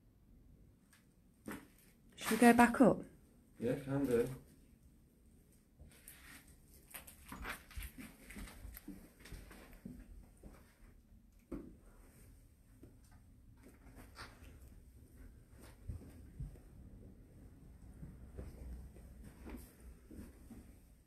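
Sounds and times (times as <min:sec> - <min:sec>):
footsteps climbing stairs: 0:15.7 - 0:16.9.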